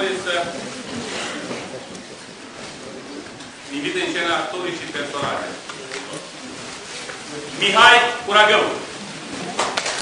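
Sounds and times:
man speaking: 0:07.5 - 0:08.9.

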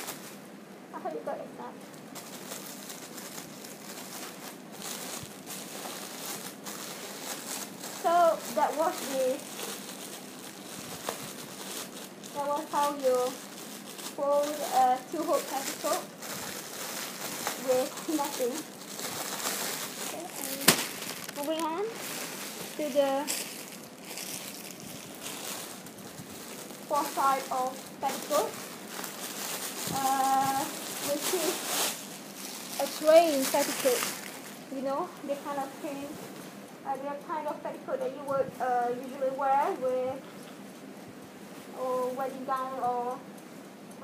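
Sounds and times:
plastic bag crinkling: 0:00.0 - 0:00.5, 0:01.9 - 0:40.2.

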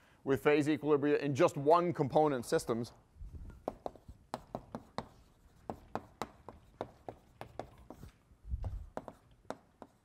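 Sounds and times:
chalk tapping and scraping: 0:03.5 - 0:10.0.

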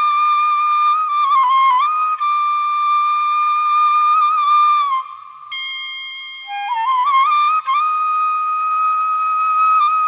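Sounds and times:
flute melody: 0:00.0 - 0:10.0
bright ringing note: 0:05.5 - 0:07.0.

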